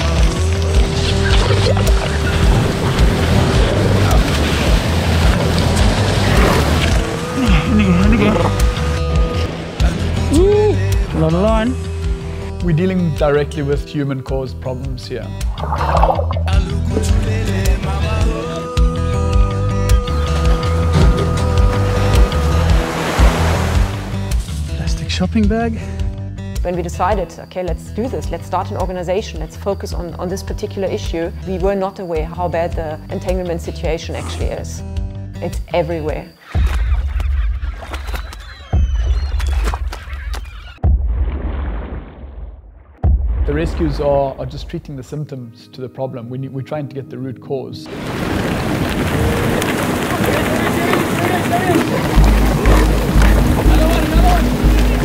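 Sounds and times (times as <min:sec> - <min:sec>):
surf breaking: 0:00.0 - 0:07.4, 0:15.4 - 0:18.2, 0:20.4 - 0:24.4, 0:47.9 - 0:55.0
music with deep bass: 0:00.0 - 0:13.2, 0:15.3 - 0:26.7, 0:51.6 - 0:55.0.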